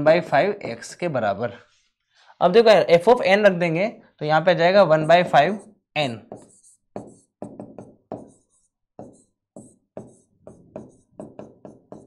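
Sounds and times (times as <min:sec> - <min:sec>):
pen scratching: 0:05.0 - 0:12.0
pen tapping on board: 0:06.2 - 0:12.0.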